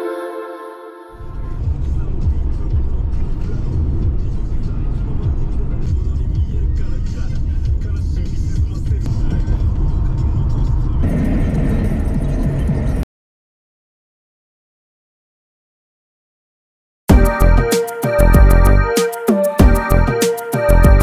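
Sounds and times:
car cabin road rumble: 0:01.2 - 0:13.0.

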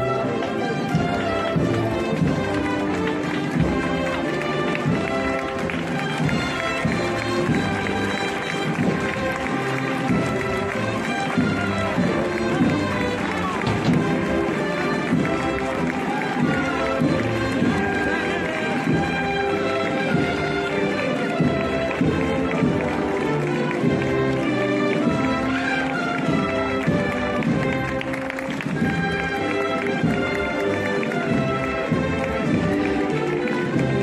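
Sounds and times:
brass processional music: 0:00.0 - 0:34.0
crowd voices: 0:00.0 - 0:34.0.

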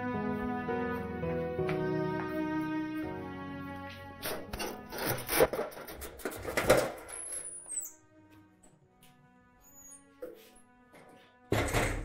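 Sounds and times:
high falling door squeak: 0:06.6 - 0:08.0, 0:09.6 - 0:10.2
wooden door scraping open: 0:11.0 - 0:12.0.

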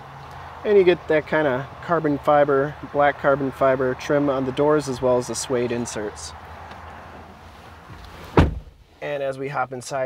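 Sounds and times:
outdoor background noise: 0:00.0 - 0:10.0
truck door shutting: 0:07.1 - 0:08.8.

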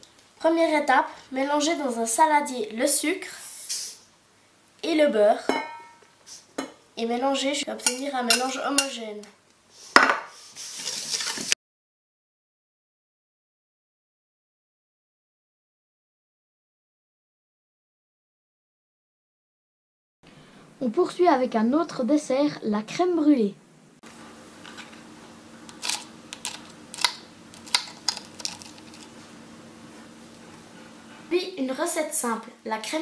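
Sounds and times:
utensil scraping steel bowl: 0:10.6 - 0:11.6, 0:25.7 - 0:29.2
spoon cracking caramelized sugar: 0:24.6 - 0:29.2.

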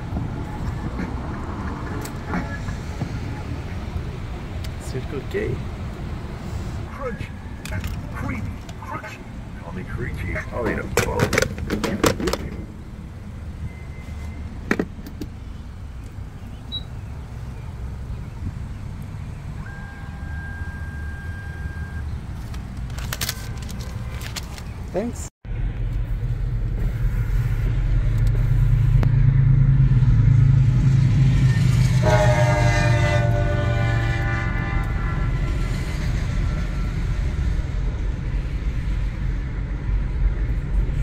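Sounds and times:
road traffic rumble: 0:00.0 - 0:41.0.

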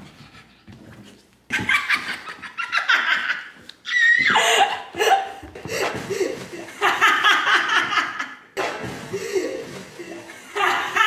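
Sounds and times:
woman laughing hard: 0:01.5 - 0:03.6, 0:04.2 - 0:08.4, 0:09.1 - 0:11.0.

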